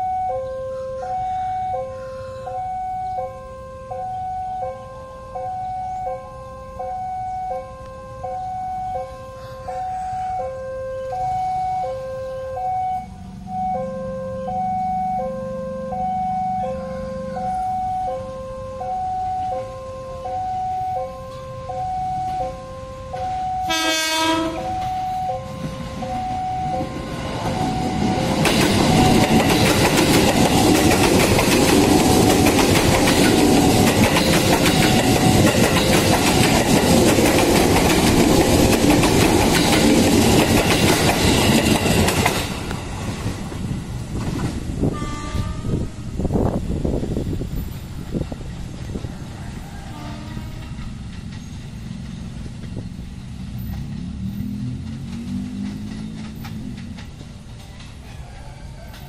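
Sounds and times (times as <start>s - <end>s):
train horn blast: 0.0s - 29.6s, 44.8s - 46.3s, 49.6s - 51.0s
two-note warning signal tone: 0.0s - 29.6s
electric train passing: 0.0s - 59.0s.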